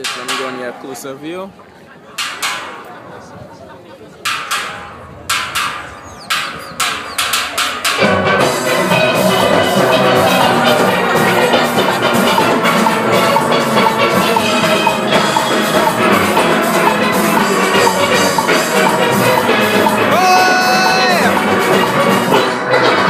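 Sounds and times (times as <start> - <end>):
sharp percussive count-in clicks: 0.0 - 0.9, 2.2 - 2.9, 4.2 - 8.2, 9.0 - 22.2
steel pan band with drum kit: 0.0 - 23.0.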